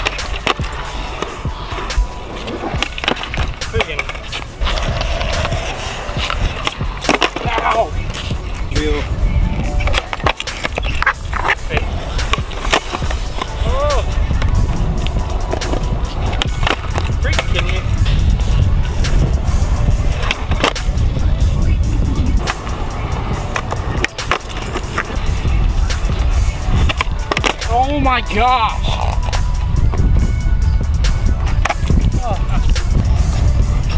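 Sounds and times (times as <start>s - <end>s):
skateboard clacks: 0.0s - 30.0s, 31.0s - 33.9s
skateboard wheels rolling on concrete: 0.0s - 33.9s.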